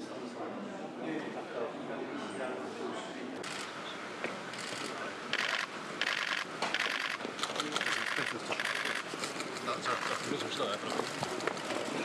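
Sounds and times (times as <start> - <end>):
camera shutters firing: 5.4 - 9.0.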